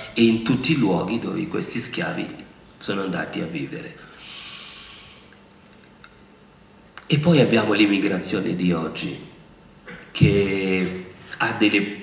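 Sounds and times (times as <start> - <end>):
man breathing in through nose: 4.1 - 5.3.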